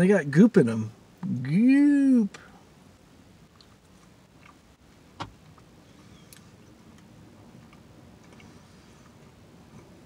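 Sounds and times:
faint chewing: 3.5 - 10.0.

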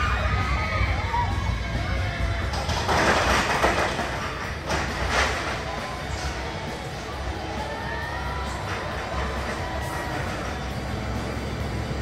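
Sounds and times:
roller coaster on track: 0.0 - 12.0.

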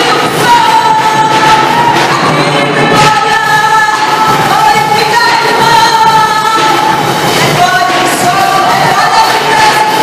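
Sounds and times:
woman singing into a microphone: 0.0 - 10.0.

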